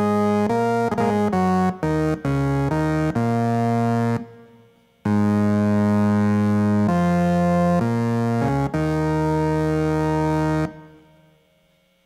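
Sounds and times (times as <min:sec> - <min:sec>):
keyboard playing held chords: 0:00.0 - 0:11.4.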